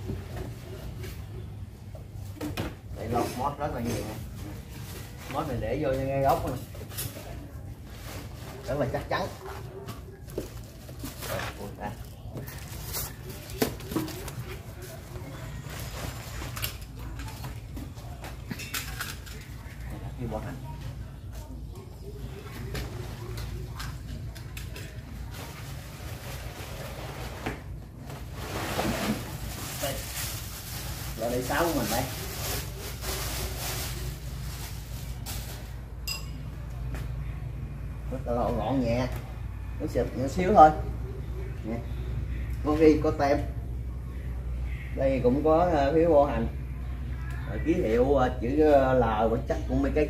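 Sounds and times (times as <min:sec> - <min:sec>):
plastic wrapping crinkling: 0:28.2 - 0:35.8.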